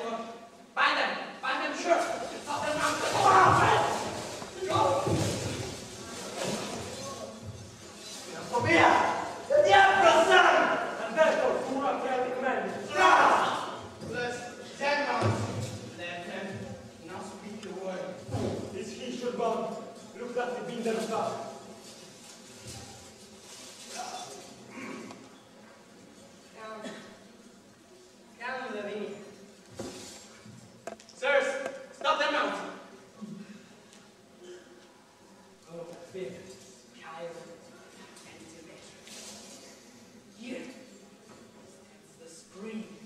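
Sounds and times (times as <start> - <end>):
actors declaiming on stage: 1.7 - 11.8.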